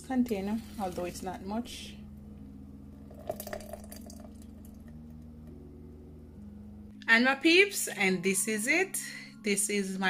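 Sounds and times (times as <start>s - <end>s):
smoothie pouring: 3.0s - 5.1s.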